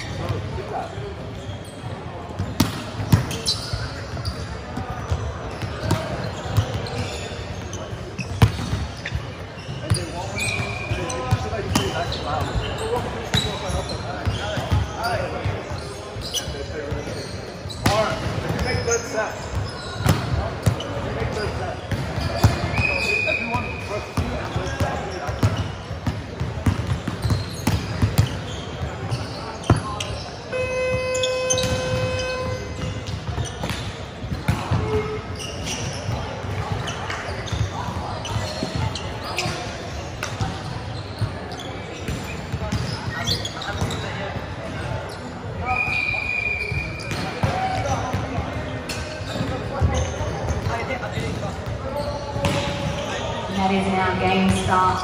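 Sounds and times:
volleyballs slapping and bouncing: 0:02.3 - 0:06.9, 0:07.8 - 0:15.6, 0:19.5 - 0:23.6
voices: 0:28.0 - 0:55.0.

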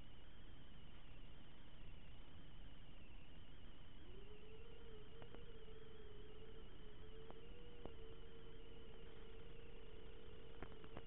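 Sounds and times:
high steady whine: 0:00.0 - 0:11.0
wavering electronic tone: 0:00.0 - 0:11.0.

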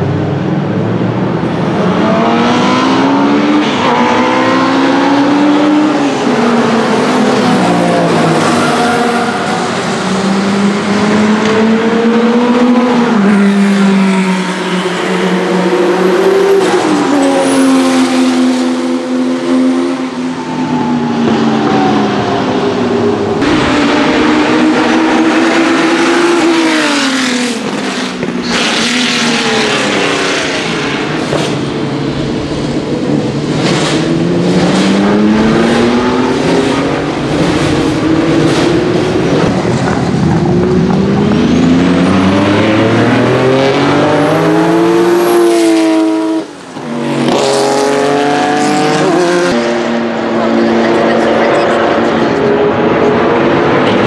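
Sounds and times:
racing engine accelerating hard: 0:01.3 - 0:54.0.

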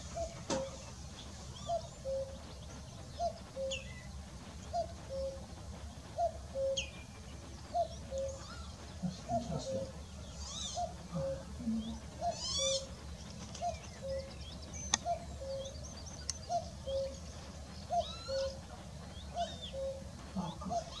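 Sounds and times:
songbirds chirping: 0:00.0 - 0:21.0
cuckoo calling: 0:01.5 - 0:02.5, 0:03.1 - 0:05.5, 0:06.2 - 0:21.0
sharp clicks: 0:14.9 - 0:15.1.

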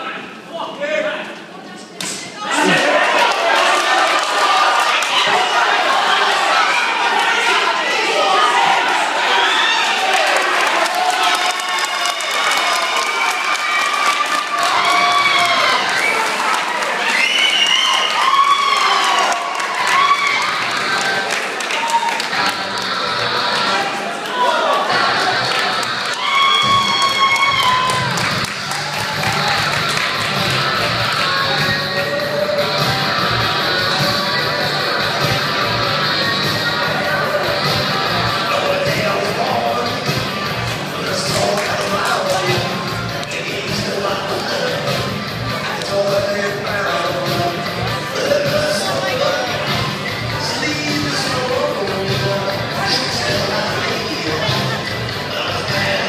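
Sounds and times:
crowd cheering and shouting: 0:02.3 - 0:56.0.

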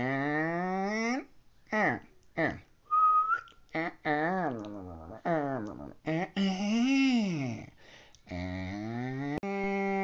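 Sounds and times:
man whistling: 0:02.9 - 0:03.5
man mumbling: 0:03.8 - 0:10.0.

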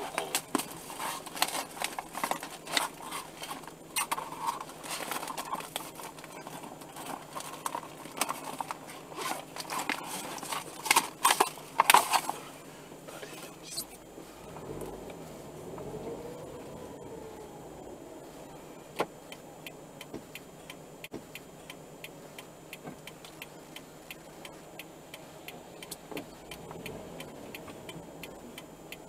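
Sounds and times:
irregular clicks and crackles: 0:00.0 - 0:13.5.

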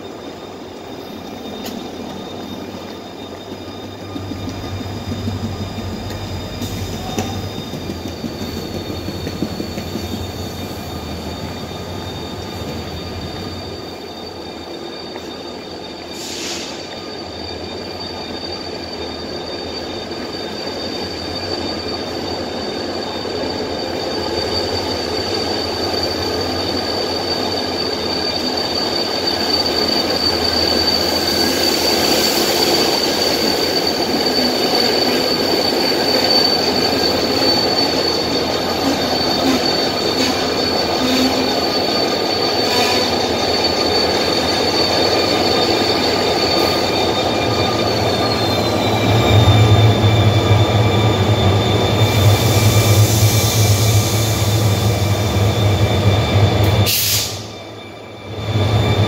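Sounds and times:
high-pitched wheel squeal: 0:00.0 - 0:59.0
diesel locomotive rumble: 0:01.7 - 0:13.6.

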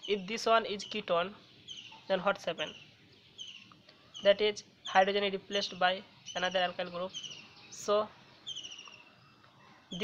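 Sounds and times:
bird chirping: 0:00.0 - 0:10.0.

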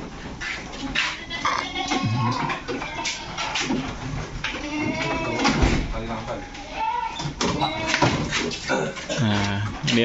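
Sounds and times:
young goats bleating: 0:01.0 - 0:03.8, 0:04.5 - 0:05.6, 0:06.2 - 0:08.2.

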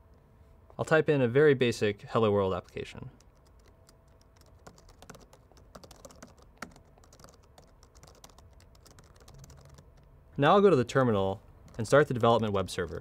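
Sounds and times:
typing on computer keyboard: 0:03.2 - 0:10.1, 0:11.6 - 0:13.0.

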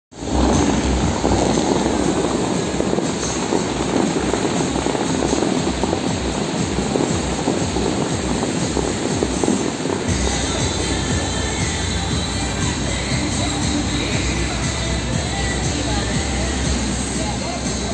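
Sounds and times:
fountain water jets rushing: 0:00.1 - 0:17.9
music playing: 0:00.1 - 0:17.9.

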